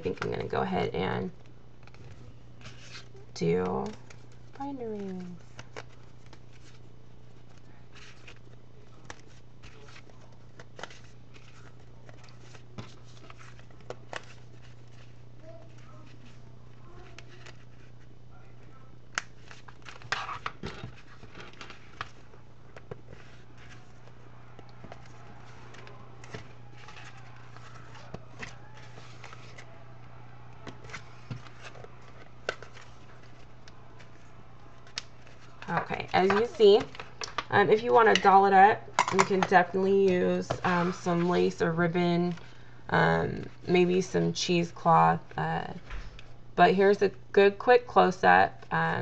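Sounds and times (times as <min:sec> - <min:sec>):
paper pages rustling: 0:01.4 - 0:38.3, 0:40.4 - 0:42.6.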